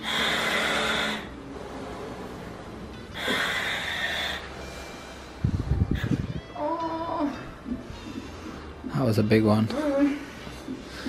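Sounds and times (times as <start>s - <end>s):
woman breathing through mouthpiece: 0.0s - 1.4s, 3.1s - 6.2s
woman moaning: 6.5s - 7.7s, 9.7s - 10.4s.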